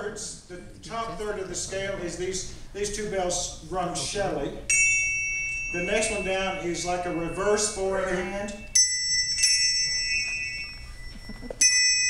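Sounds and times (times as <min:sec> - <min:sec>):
handbells ringing: 0:04.7 - 0:12.0.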